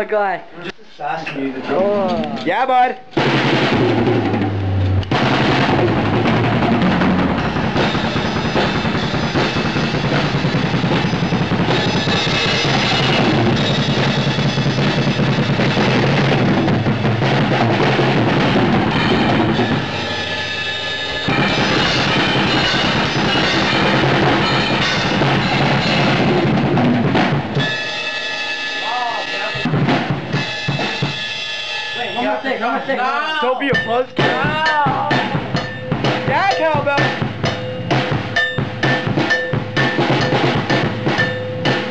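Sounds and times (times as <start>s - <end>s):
drum kit played fast: 3.1s - 41.9s.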